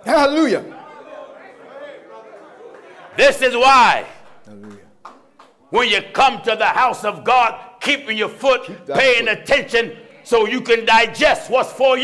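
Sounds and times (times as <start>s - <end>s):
congregation murmuring: 0.0s - 12.0s.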